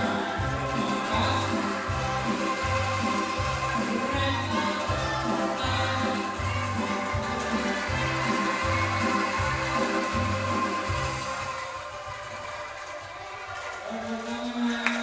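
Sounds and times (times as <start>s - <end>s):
music with repeating bass pulse: 0.0s - 11.7s.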